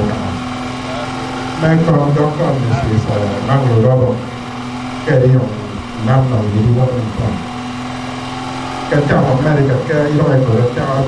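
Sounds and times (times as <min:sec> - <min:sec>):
man speaking into a microphone: 0:00.0 - 0:04.4, 0:05.0 - 0:07.5, 0:08.9 - 0:11.0
steady low hum: 0:00.0 - 0:11.0.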